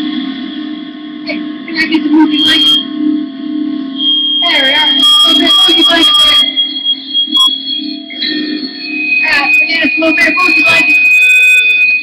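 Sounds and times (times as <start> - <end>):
amplifier hum: 0.0 - 12.0
steady high-pitched tone: 0.0 - 12.0
warbling voice: 1.3 - 2.9, 4.0 - 11.2.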